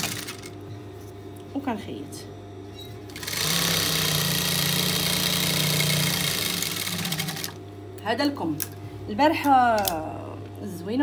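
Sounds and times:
sewing machine stitching: 3.2s - 7.6s.

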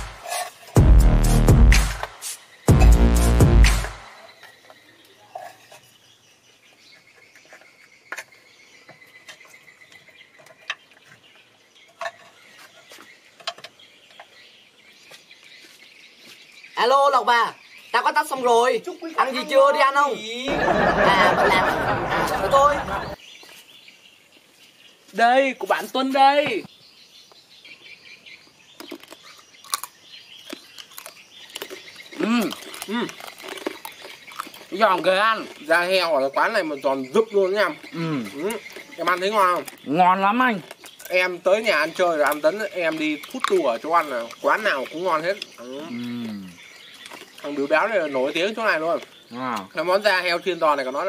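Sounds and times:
crunching crispy food: 28.7s - 36.1s, 37.8s - 47.6s
person humming mm: 45.9s - 46.6s.

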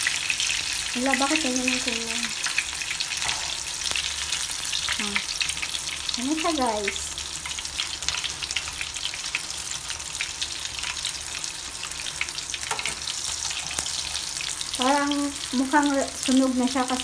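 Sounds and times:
fish frying in hot oil: 0.0s - 17.0s.

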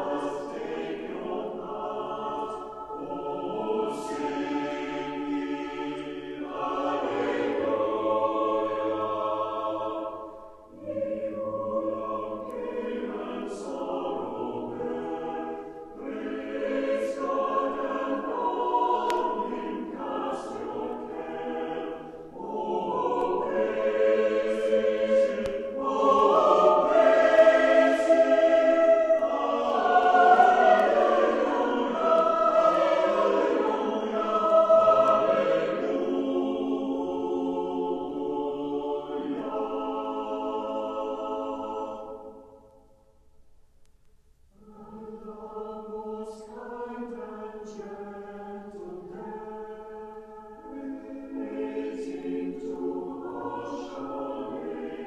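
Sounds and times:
choir singing: 0.0s - 43.0s, 44.6s - 55.0s.

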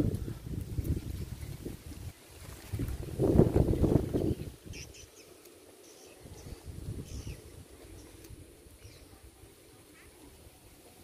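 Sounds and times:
wind rumbling on microphone: 0.0s - 9.7s.

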